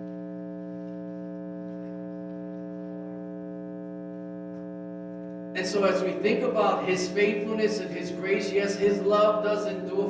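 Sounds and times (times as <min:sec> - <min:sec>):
electronic hum of held tones: 0:00.0 - 0:10.0.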